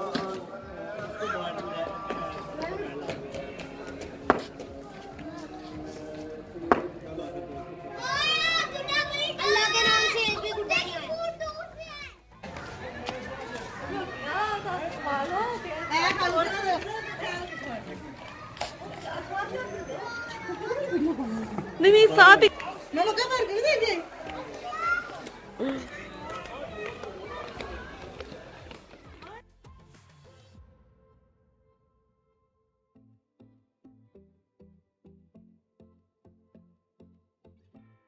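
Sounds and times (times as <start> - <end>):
indistinct voices: 0.0 - 11.2
soft background music: 0.0 - 18.2
children talking: 0.0 - 29.5.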